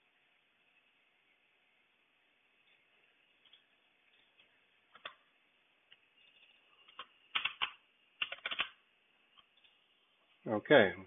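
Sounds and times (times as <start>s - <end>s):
computer keyboard keystrokes: 6.8s - 8.8s.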